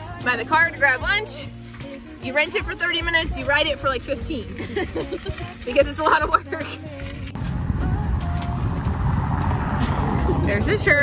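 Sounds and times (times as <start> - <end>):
car passing on bricks: 7.0 - 11.0.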